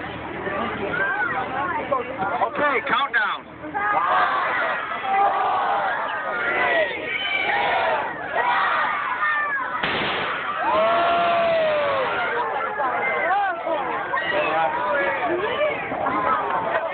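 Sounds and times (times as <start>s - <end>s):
crowd chatter: 0.0s - 16.9s
crowd cheering: 3.7s - 16.9s
cannon blast: 9.8s - 10.6s
long gliding whoop: 10.6s - 12.3s.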